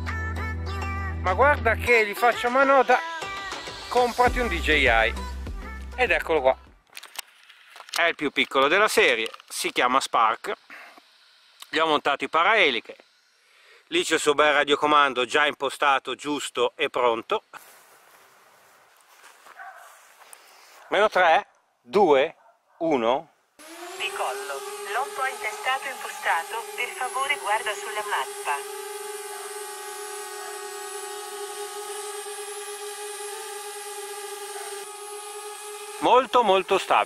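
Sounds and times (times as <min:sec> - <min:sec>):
faint outdoor hiss: 0:06.8 - 0:23.6
drone propellers whining: 0:23.6 - 0:37.0.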